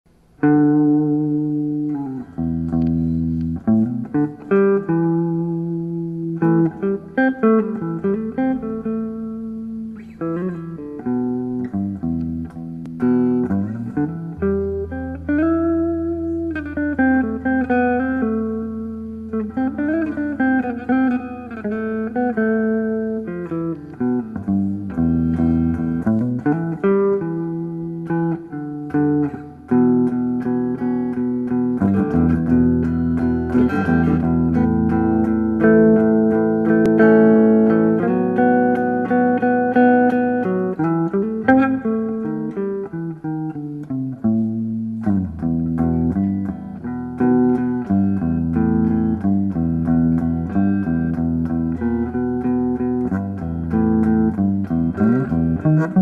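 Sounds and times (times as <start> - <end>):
electric guitar improvising: 0.1 - 56.0.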